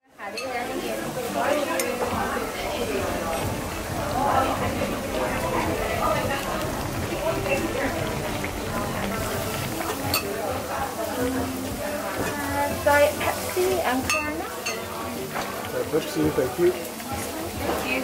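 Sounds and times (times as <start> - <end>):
voices chattering: 0.1 - 18.0
metal and dishes clinking: 0.2 - 10.6, 12.1 - 18.0
ladle stirring in a pot: 0.2 - 18.0.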